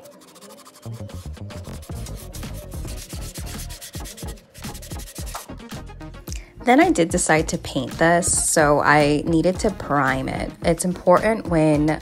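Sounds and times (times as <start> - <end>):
sanding block rasping on plastic: 0.0 - 5.5.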